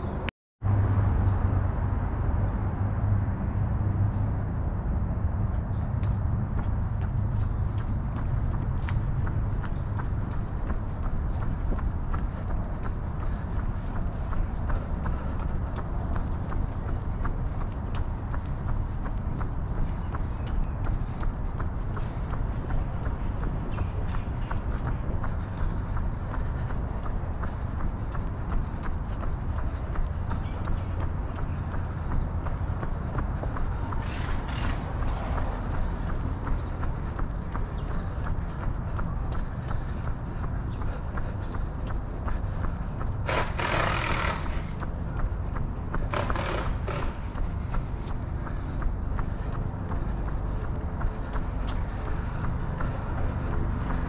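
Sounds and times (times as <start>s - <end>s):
steady low rumble: 0.0s - 54.0s
running footsteps on concrete: 5.3s - 54.0s.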